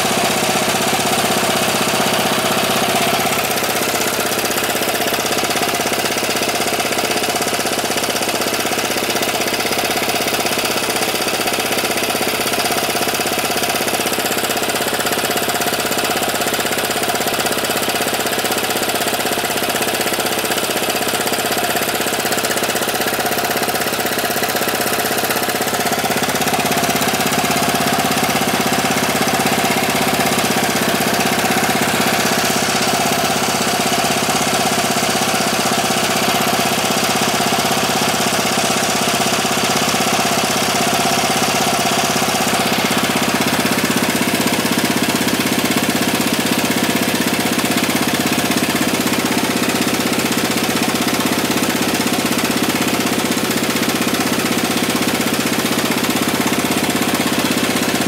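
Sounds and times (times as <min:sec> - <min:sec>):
scooter engine idling: 0:00.0 - 0:58.0.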